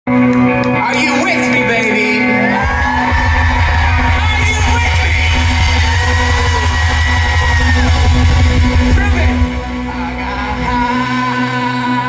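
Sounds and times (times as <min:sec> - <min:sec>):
live rock band through pa: 0:00.1 - 0:12.0.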